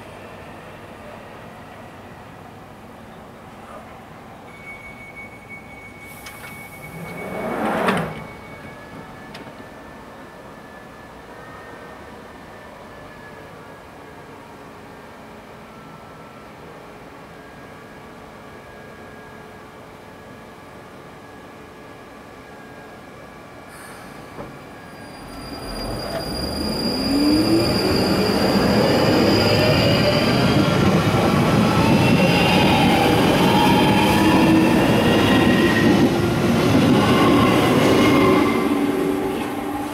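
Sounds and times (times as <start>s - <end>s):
wheel and rail noise: 6.2s - 9.7s
train humming: 25.4s - 39.9s.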